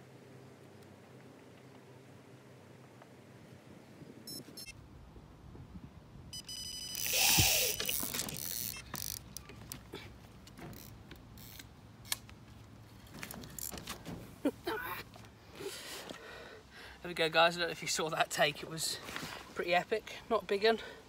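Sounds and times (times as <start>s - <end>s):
electronic bite alarm bleeping: 4.3s - 4.7s, 6.3s - 8.9s
clicks of rod and reel handling: 6.9s - 12.4s.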